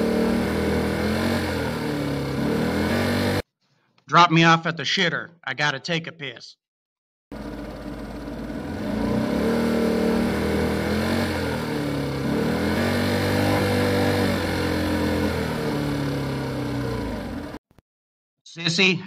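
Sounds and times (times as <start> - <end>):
vehicle engine revving: 0.0 - 3.5, 7.3 - 17.6.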